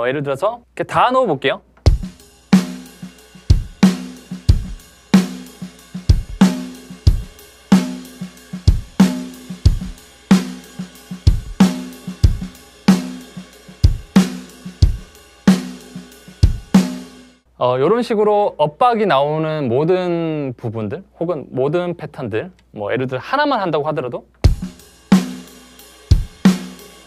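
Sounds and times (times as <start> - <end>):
snare drum backbeats: 1.8 - 5.5
bass drum: 1.8 - 15.7, 16.4 - 17.0, 24.4 - 25.4, 26.1 - 26.7.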